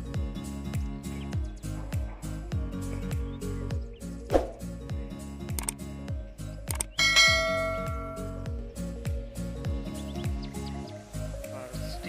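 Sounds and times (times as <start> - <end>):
background music with bass drum: 0.0 - 12.0
bell chime sound effect: 7.0 - 8.4.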